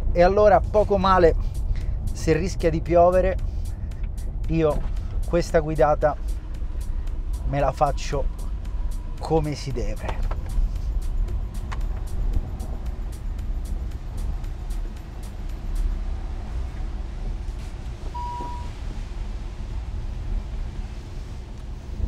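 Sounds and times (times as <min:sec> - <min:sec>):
background music with ticking beat: 0:00.0 - 0:18.0
car engine rumbling: 0:00.0 - 0:22.0
wind and road noise: 0:00.0 - 0:22.0
short beep: 0:18.2 - 0:18.7.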